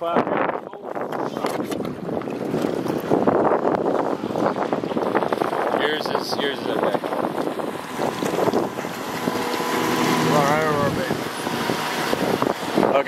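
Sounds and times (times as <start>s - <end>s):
water noise: 0.0s - 13.0s
wind: 0.0s - 13.0s
motorboat engine drone: 0.3s - 13.0s.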